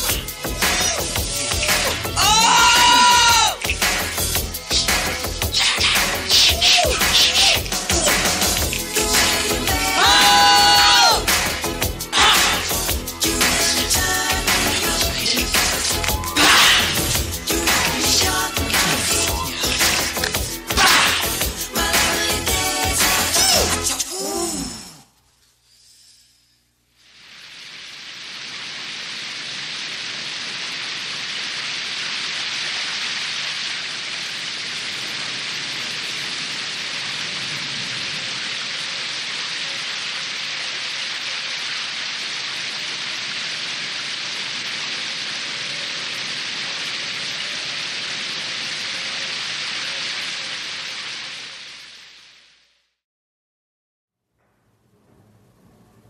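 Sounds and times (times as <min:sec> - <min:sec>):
steady rain-like hiss: 0:00.0 - 0:53.0.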